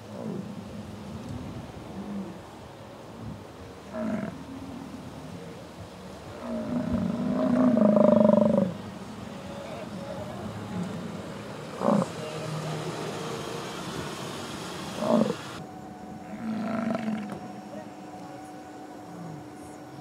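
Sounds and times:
bison bellowing: 0:06.3 - 0:08.8, 0:09.6 - 0:15.6, 0:16.2 - 0:17.7.

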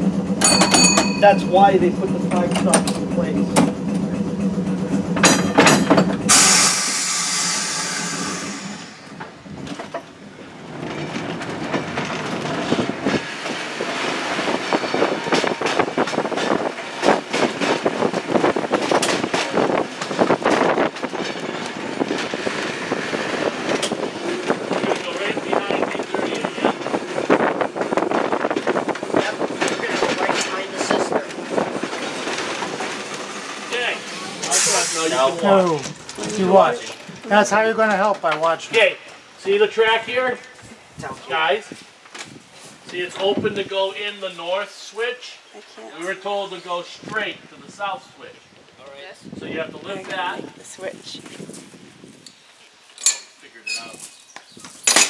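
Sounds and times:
pitched hum: 0:00.0 - 0:09.8
trolley wheels clacking over rails: 0:00.0 - 0:39.4
loud hiss of air: 0:06.3 - 0:09.4, 0:34.2 - 0:35.2.

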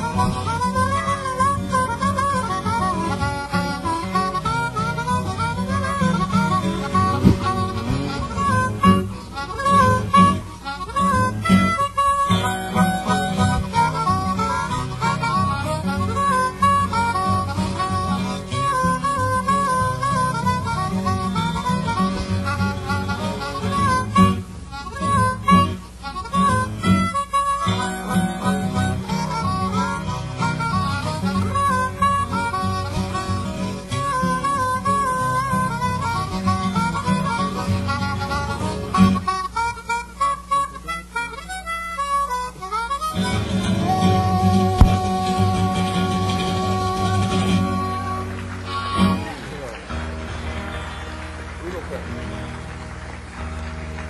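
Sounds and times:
blues harmonica wailing: 0:00.0 - 0:54.0
fingerpicked acoustic guitar: 0:00.0 - 0:54.0.

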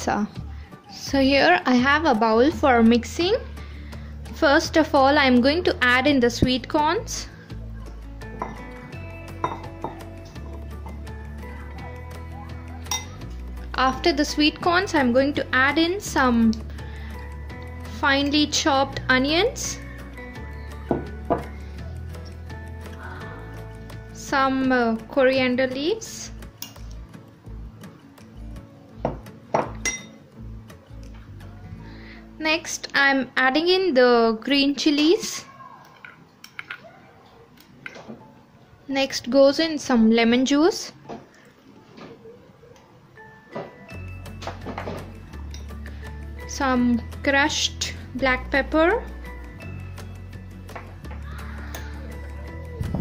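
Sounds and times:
background music: 0:00.0 - 0:36.8, 0:42.5 - 0:53.0
metal spoon clinking on bowls: 0:08.4 - 0:08.7, 0:09.3 - 0:11.0, 0:12.9 - 0:13.4, 0:29.6 - 0:30.2, 0:44.4 - 0:45.8.

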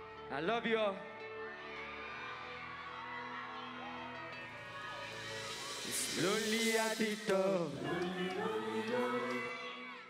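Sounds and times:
faint crowd whoops: 0:01.3 - 0:07.3
person singing: 0:04.6 - 0:10.0.

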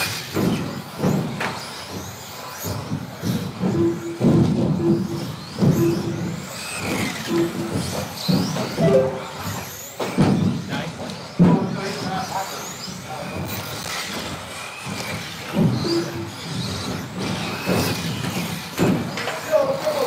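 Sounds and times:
short beeps: 0:08.8 - 0:09.4.

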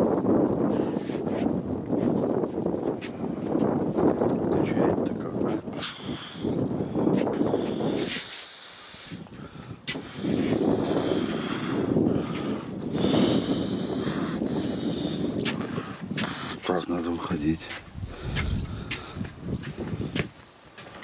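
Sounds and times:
wind rushing on microphone: 0:00.0 - 0:21.0.

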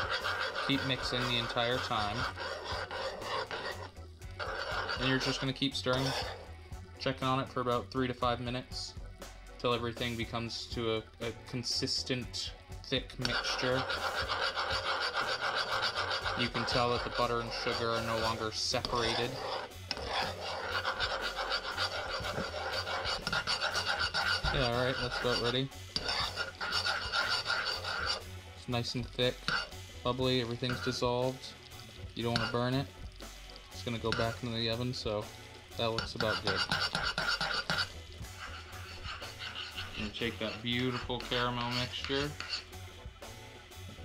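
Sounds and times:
metal spoon scraping saucepan: 0:00.0 - 0:06.6, 0:12.9 - 0:31.6, 0:32.2 - 0:33.0, 0:33.8 - 0:42.8
thick mixture bubbling: 0:00.0 - 0:06.6, 0:13.2 - 0:43.0.

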